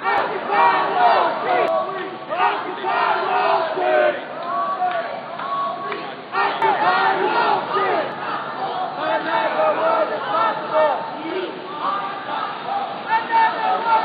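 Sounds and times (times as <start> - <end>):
crowd shouting and yelling: 0.0 - 14.0.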